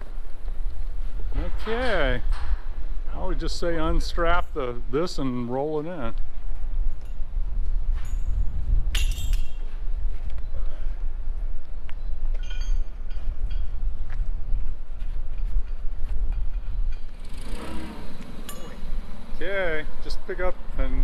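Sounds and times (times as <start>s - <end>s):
light metal clinks: 8.0s - 9.7s, 12.3s - 13.8s, 18.4s - 18.8s.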